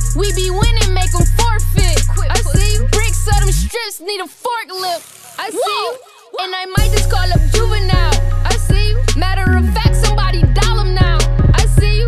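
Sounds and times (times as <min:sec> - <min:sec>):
person rapping: 0:00.0 - 0:12.0.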